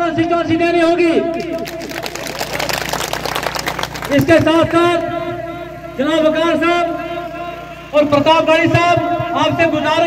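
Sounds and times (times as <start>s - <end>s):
large crowd clapping: 1.3s - 5.1s.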